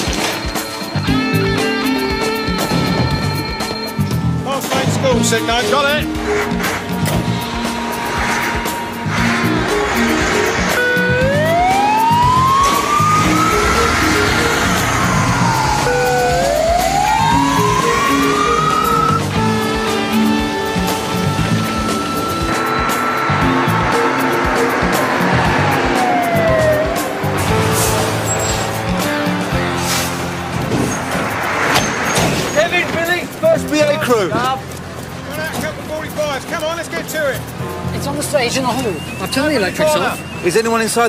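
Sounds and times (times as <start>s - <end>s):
background music: 0.0s - 41.0s
fire engine siren wailing: 7.4s - 31.1s.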